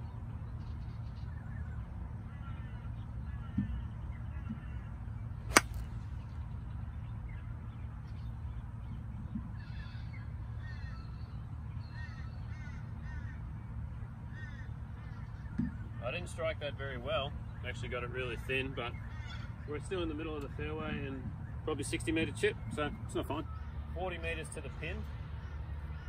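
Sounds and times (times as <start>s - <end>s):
birds calling: 0.8s - 24.3s
golf club striking ball: 5.5s - 6.0s.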